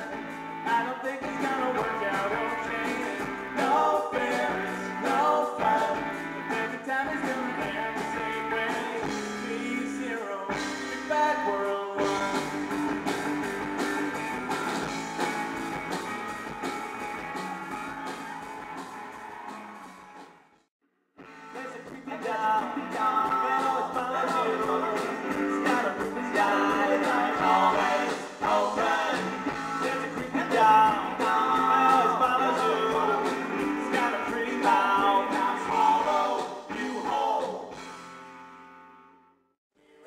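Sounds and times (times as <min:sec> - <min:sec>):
live rock band playing: 0:00.0 - 0:20.5, 0:21.2 - 0:38.9.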